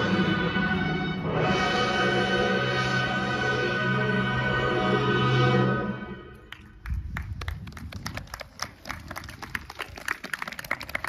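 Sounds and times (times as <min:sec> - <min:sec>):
show music: 0:00.0 - 0:06.5
audience applauding: 0:06.5 - 0:11.0.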